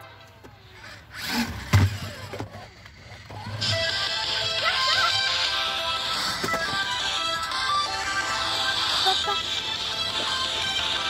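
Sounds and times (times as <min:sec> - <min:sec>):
toy car electric motor: 0:00.8 - 0:05.1
background music: 0:03.4 - 0:11.0.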